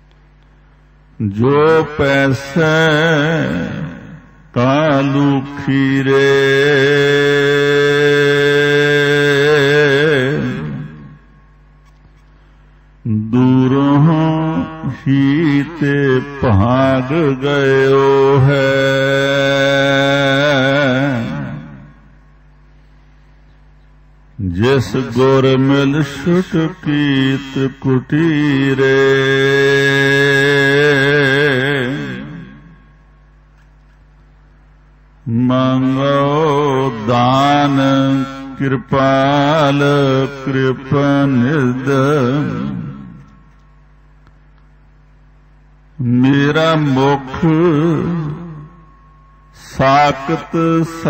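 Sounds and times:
man chanting a hymn: 1.2s - 11.2s, 13.0s - 21.9s, 24.4s - 32.8s, 35.2s - 43.6s, 46.0s - 48.8s, 49.5s - 51.0s
man singing devotional song: 1.2s - 11.5s, 13.0s - 22.1s, 24.4s - 33.0s, 35.2s - 43.7s, 46.0s - 51.0s.

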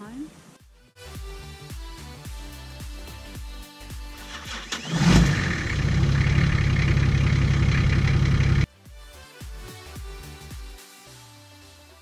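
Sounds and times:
diesel engine starting and running: 4.2s - 8.7s.

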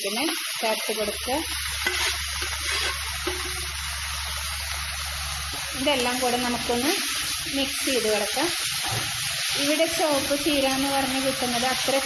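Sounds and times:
spinach sizzling in oil: 0.0s - 12.0s
spatula stirring in wok: 1.5s - 3.8s.

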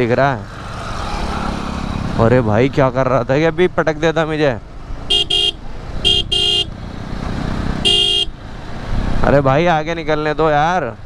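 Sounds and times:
motorcycle engine noise: 0.0s - 9.8s
motorcycle horn beeping: 5.1s - 6.7s, 7.8s - 8.4s.

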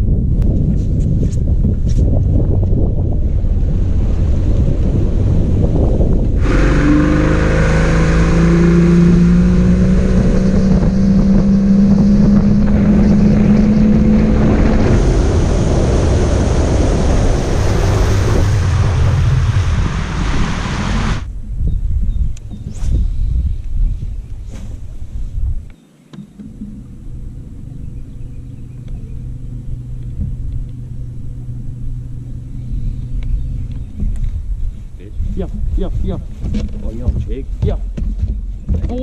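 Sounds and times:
wind noise on microphone: 0.0s - 39.0s
water rushing past hull: 3.2s - 21.3s
outboard motor running: 26.3s - 34.8s.

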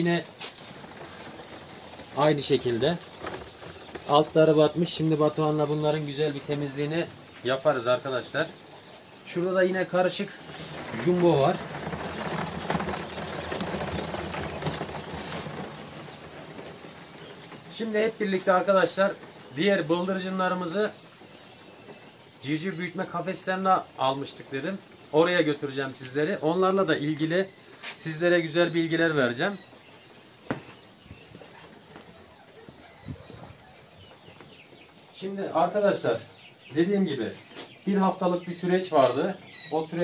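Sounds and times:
faint footsteps: 0.0s - 22.8s, 25.9s - 39.8s.

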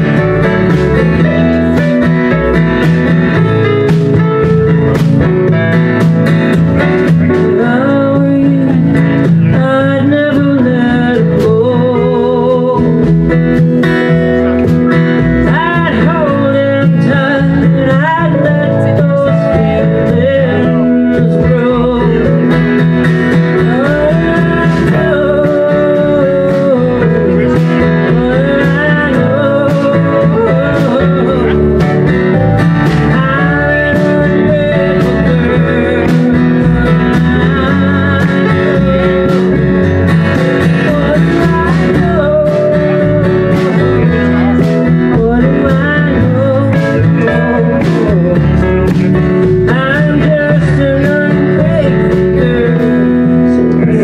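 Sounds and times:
band playing country song: 0.0s - 54.0s
strummed acoustic guitar: 0.0s - 54.0s.

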